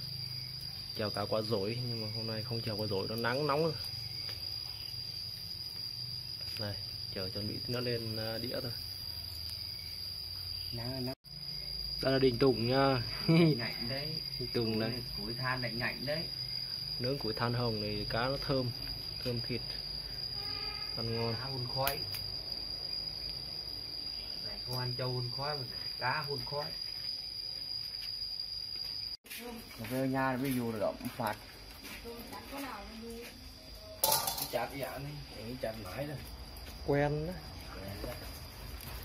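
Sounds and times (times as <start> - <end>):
high-pitched insect drone: 0.0 - 39.0.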